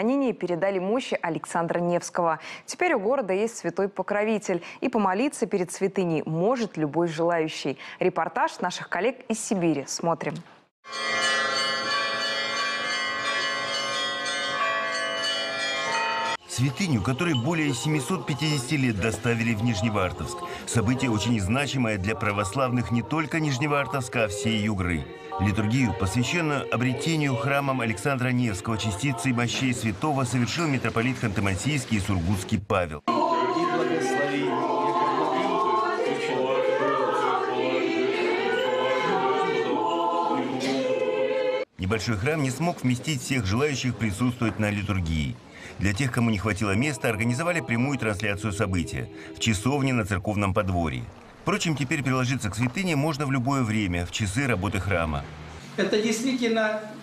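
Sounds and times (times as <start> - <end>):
church bells pealing: 10.9 - 20.9
choir chanting a cappella: 16.4 - 32.3, 33.1 - 41.7, 46.0 - 50.0.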